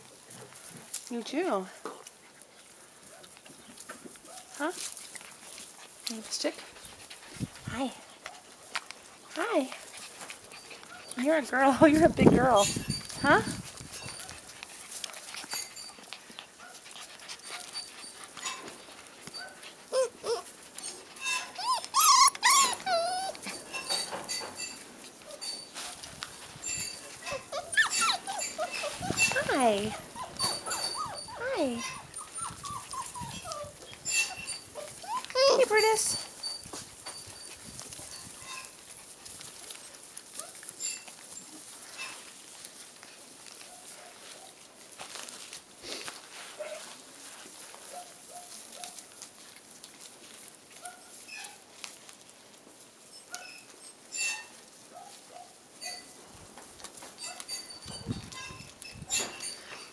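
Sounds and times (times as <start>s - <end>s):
puppies whining: 9.8s - 38.8s, 39.6s - 42.2s
scuffling noise: 25.2s - 40.7s, 41.4s - 52.9s
woman saying hi softly: 29.3s - 30.0s, 31.4s - 31.9s, 35.4s - 36.2s.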